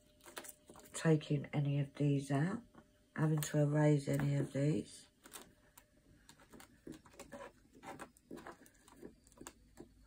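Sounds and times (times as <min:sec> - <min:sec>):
paper booklet and pen rustling: 0:00.0 - 0:01.0, 0:03.2 - 0:10.0.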